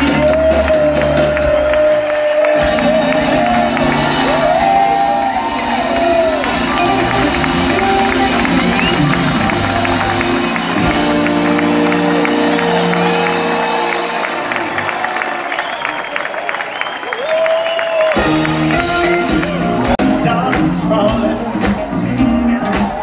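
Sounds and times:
live band playing: 0:00.0 - 0:16.6, 0:17.8 - 0:23.0
crowd cheering: 0:00.0 - 0:20.0, 0:21.3 - 0:23.0.

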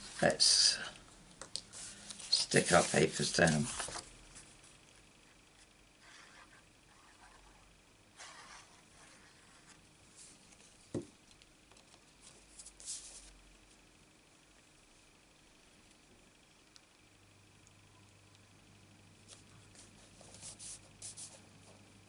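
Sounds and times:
paper rustling and sliding: 0:01.7 - 0:04.5.

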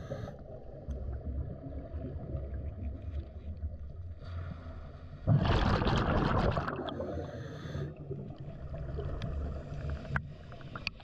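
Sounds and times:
underwater low rumble: 0:00.0 - 0:11.0.

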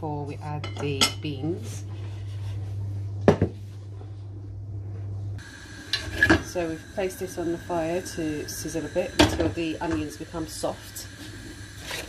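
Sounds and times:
steady low hum: 0:00.0 - 0:11.8.

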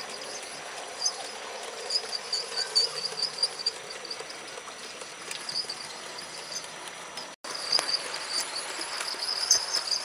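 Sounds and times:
model train wheels hissing on rails: 0:00.0 - 0:10.0.

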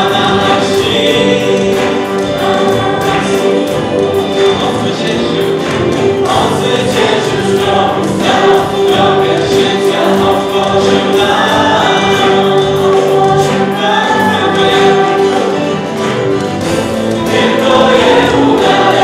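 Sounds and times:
acoustic guitar: 0:00.0 - 0:19.0
cello: 0:00.0 - 0:19.0
hand drums: 0:00.0 - 0:19.0
keyboard: 0:00.0 - 0:19.0
violin: 0:00.0 - 0:19.0
voices singing together: 0:00.0 - 0:19.0.

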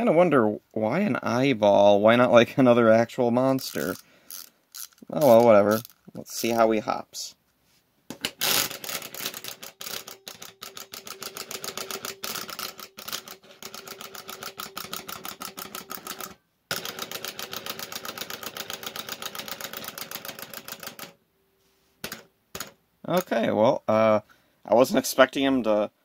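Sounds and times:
wind-up toy clockwork buzzing: 0:03.6 - 0:06.0.

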